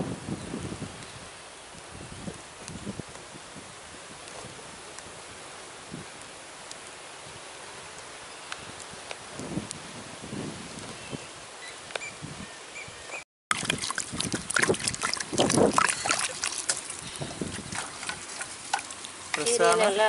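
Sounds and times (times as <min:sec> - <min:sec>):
quiet outdoor ambience: 0:00.0 - 0:20.0
water poured from a jug: 0:13.5 - 0:19.4
hands washing leaves in water: 0:13.5 - 0:20.0.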